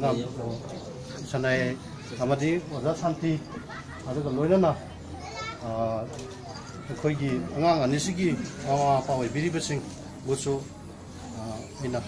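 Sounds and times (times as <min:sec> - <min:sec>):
man speaking through loudspeakers: 0:00.0 - 0:03.5, 0:06.9 - 0:10.7, 0:11.3 - 0:12.0.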